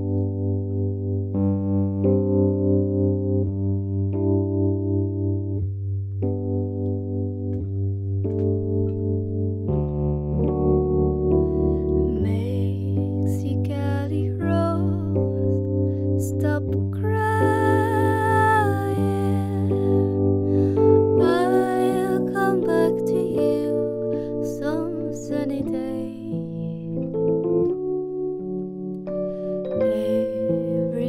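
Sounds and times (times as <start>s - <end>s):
electric piano chords with tremolo: 0.0s - 31.0s.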